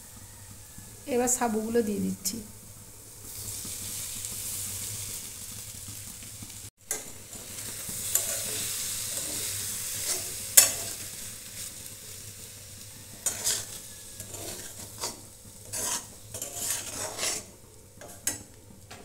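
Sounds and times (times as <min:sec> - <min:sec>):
food sizzling in a pan: 0:00.0 - 0:19.0
metal spatula scraping a pan: 0:06.9 - 0:19.0.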